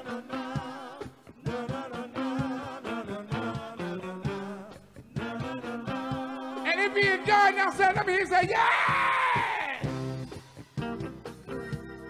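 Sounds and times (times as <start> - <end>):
bass guitar: 0.0 - 12.0
guitar: 0.0 - 12.0.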